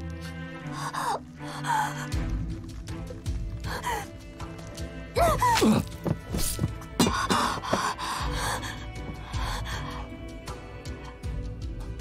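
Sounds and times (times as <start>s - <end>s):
tense dramatic score: 0.0s - 12.0s
person gasping: 5.2s - 10.0s
dagger hitting stone floor: 5.5s - 7.9s.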